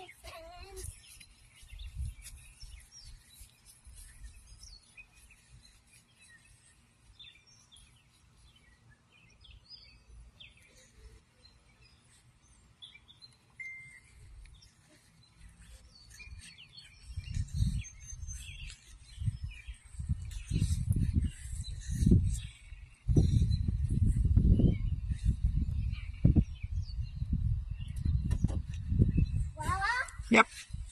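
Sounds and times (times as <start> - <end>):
faint outdoor background noise: 0.0 - 30.9
small birds chirping: 0.0 - 30.9.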